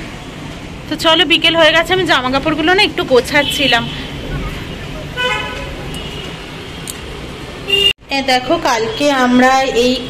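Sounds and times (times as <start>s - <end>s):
city traffic hum: 0.0s - 10.0s
vehicle horn toot: 5.2s - 6.4s, 7.7s - 8.0s.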